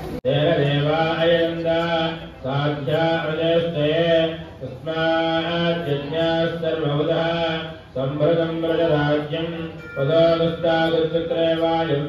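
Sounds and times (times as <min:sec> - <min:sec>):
man chanting mantras: 0:00.3 - 0:12.0.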